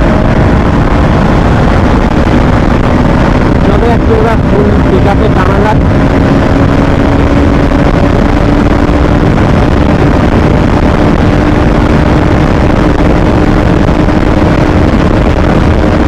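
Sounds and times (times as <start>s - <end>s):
motorcycle engine running: 0.0s - 16.0s
wind rushing over microphone: 0.0s - 16.0s.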